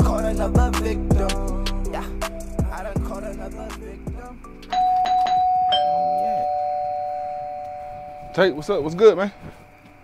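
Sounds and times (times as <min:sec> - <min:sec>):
hip-hop music: 0:00.0 - 0:09.3
doorbell chiming ding-dong: 0:04.7 - 0:09.2.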